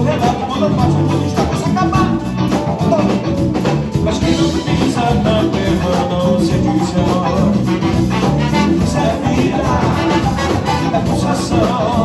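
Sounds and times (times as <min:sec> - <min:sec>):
live funk band playing: 0:00.0 - 0:12.0.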